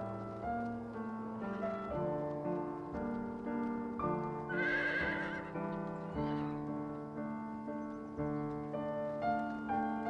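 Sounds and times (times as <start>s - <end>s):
soft piano music: 0.0s - 10.0s
horse whinnying: 4.5s - 5.5s.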